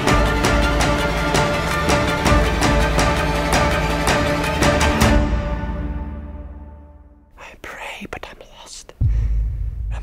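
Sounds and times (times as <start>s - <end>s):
person whispering: 7.3s - 9.0s.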